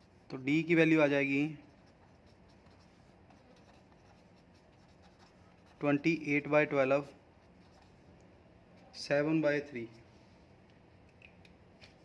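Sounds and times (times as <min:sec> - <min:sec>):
pen scratching on paper: 0:01.4 - 0:06.2, 0:07.3 - 0:08.1.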